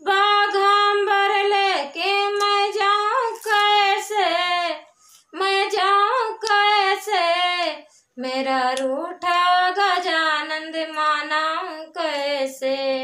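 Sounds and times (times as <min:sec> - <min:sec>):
woman singing unaccompanied: 0:00.0 - 0:13.0.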